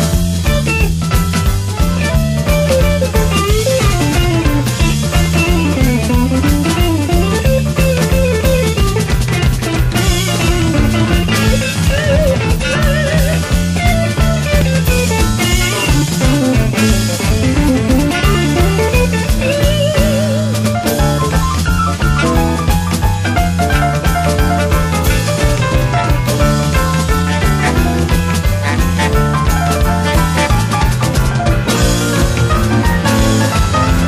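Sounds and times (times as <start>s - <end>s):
bass guitar: 0.0s - 34.0s
drum kit playing: 0.0s - 34.0s
electric guitar solo: 0.0s - 34.0s.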